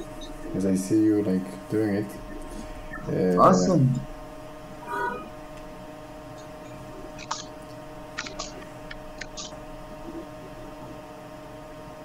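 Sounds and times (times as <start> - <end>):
faint steady hum: 0.0 - 12.0
person saying uh: 3.1 - 4.1.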